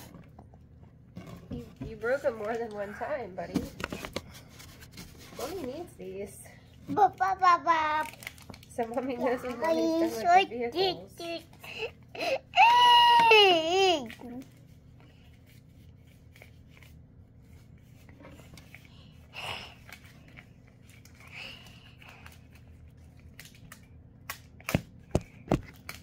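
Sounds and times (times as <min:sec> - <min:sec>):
toddler growling: 0:09.0 - 0:10.4
toddler crying: 0:12.2 - 0:14.1.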